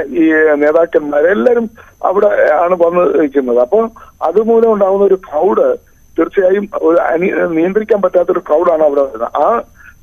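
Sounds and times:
man talking over telephone: 0.0 - 10.0.

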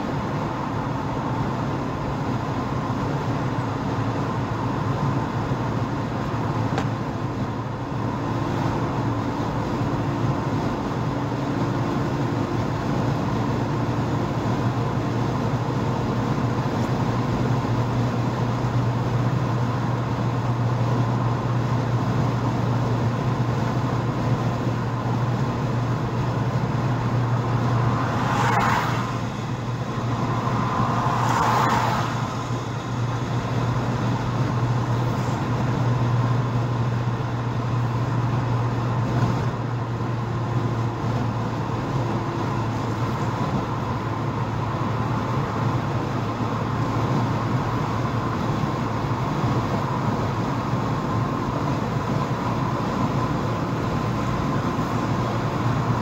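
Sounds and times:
car engine drone: 0.0 - 56.0
tyre and road rumble: 5.0 - 56.0
rushing noise: 26.6 - 35.6.

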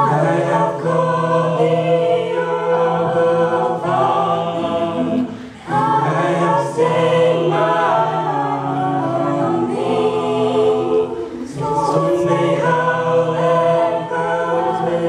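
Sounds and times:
choir singing a hymn in harmony: 0.0 - 15.0.

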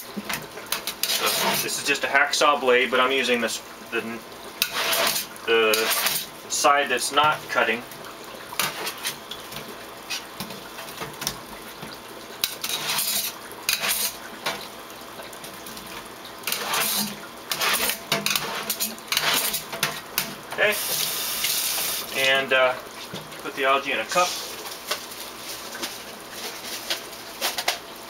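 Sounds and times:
water running in a sink: 0.0 - 28.0
hacksaw blade scraping algae: 1.0 - 1.8, 4.6 - 6.3, 12.4 - 14.2, 16.5 - 19.7.

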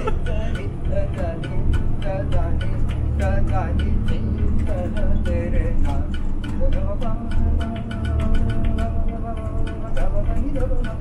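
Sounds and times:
bus rumbling: 0.0 - 11.0
man singing into microphone: 0.0 - 11.0.

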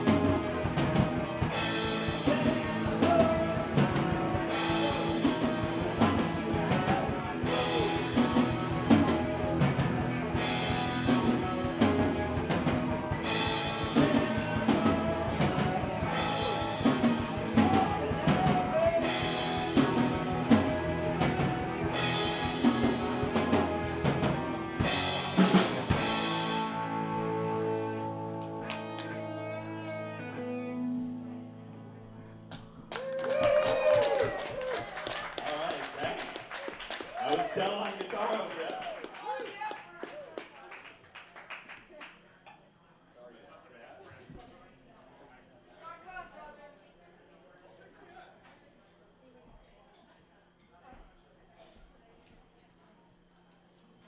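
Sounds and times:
live rock band playing: 0.0 - 31.4.

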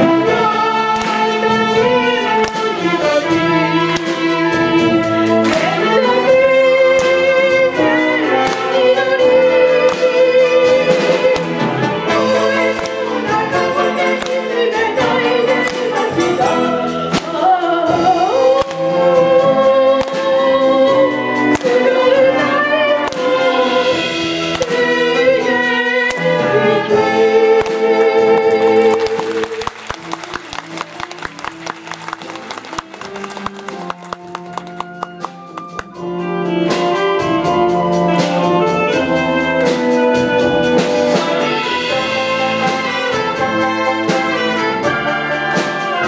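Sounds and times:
wind band playing: 0.0 - 46.0.

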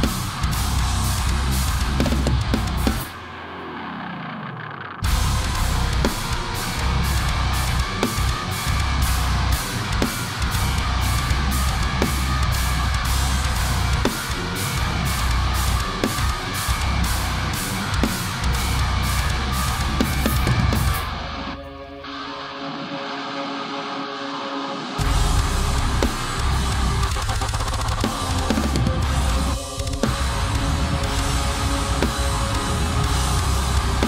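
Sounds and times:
drum kit with cymbals: 0.0 - 3.8, 5.0 - 21.5, 25.0 - 34.0
heavy metal guitars: 0.0 - 34.0
thin filtered guitar: 0.0 - 34.0.

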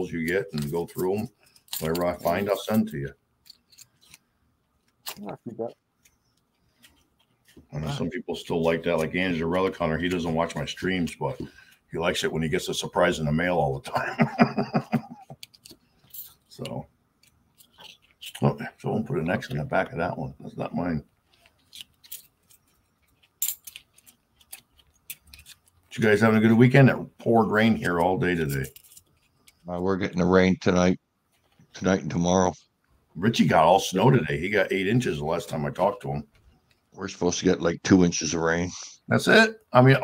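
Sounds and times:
small objects handled on desk: 0.2 - 5.2, 15.3 - 18.6, 21.1 - 26.6, 27.5 - 29.7
small objects clicking on desk: 15.3 - 18.4, 21.3 - 25.9.

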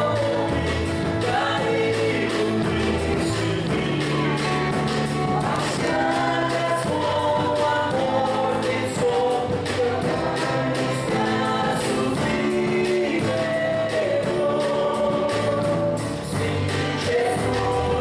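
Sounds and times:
drum kit beat: 0.0 - 18.0
guitars: 0.0 - 18.0
woman and man singing a hymn: 0.0 - 18.0.

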